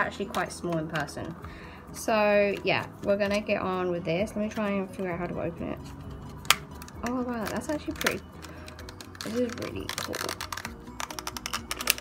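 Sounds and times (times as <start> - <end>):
blister pack being torn open: 6.4 - 12.0.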